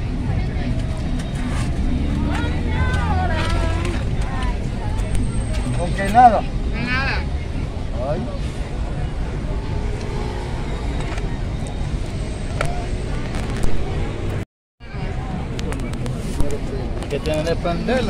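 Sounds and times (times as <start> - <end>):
low traffic rumble: 0.0 - 18.0
voices in background: 0.0 - 18.0.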